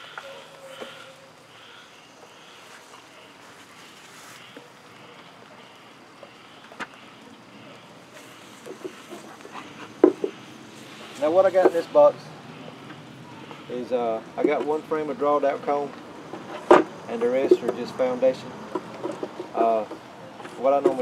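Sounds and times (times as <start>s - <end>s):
light rain hiss: 0.0s - 20.9s
wooden boxes knocking: 10.0s - 10.4s.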